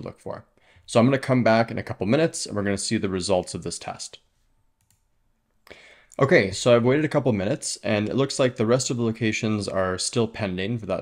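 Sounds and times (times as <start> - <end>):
man's voice: 0.0 - 4.2, 6.2 - 11.0
computer mouse clicks: 4.8 - 5.1.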